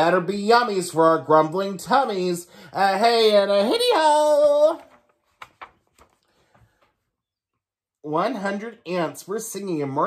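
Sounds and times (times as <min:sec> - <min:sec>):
paper page turning: 0:04.2 - 0:06.9.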